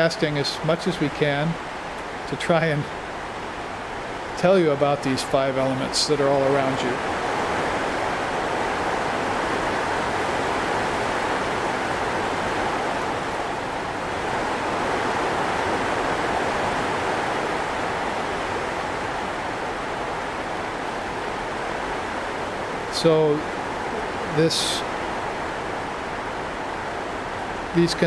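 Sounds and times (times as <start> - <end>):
floodwater rushing down a gully: 0.0 - 28.0.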